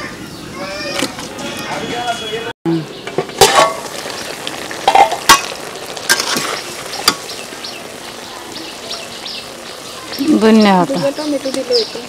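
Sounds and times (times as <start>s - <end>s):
curry sizzling in a pan: 3.0s - 12.0s
metal lid and spatula clanks: 3.2s - 3.9s, 4.8s - 5.5s.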